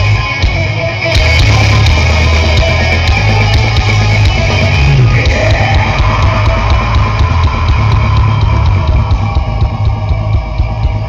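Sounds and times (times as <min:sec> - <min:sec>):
distorted electric guitars: 0:00.0 - 0:11.0
fast drum beat: 0:00.0 - 0:11.0.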